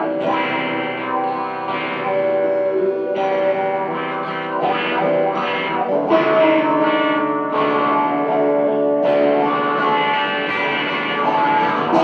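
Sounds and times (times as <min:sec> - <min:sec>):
electric guitar through amplifier: 0:00.0 - 0:12.0.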